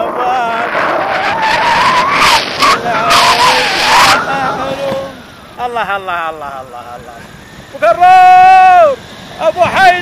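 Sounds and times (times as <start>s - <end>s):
wind rushing on microphone: 0.0s - 6.3s.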